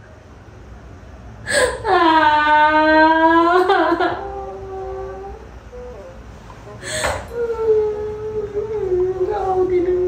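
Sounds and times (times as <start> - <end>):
woman crying wail: 1.5 - 5.4.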